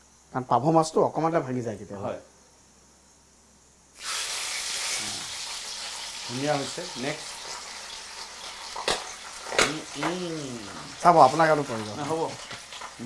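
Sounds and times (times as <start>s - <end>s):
food sizzling in hot oil: 3.9s - 13.0s.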